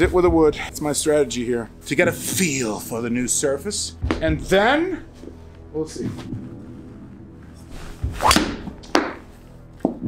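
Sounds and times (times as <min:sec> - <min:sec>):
golf club whoosh: 0:07.6 - 0:09.3
clubhead striking golf ball: 0:08.2 - 0:09.2.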